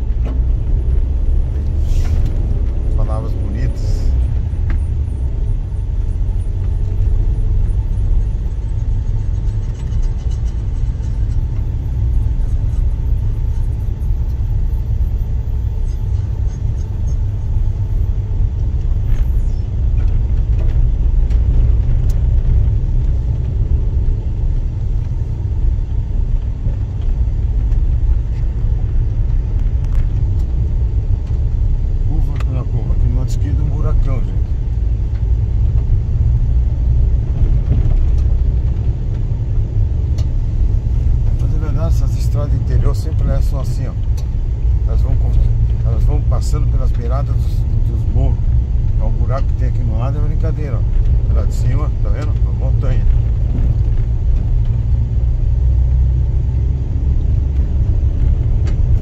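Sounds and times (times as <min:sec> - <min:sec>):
car driving on dirt road: 0:00.0 - 0:59.0.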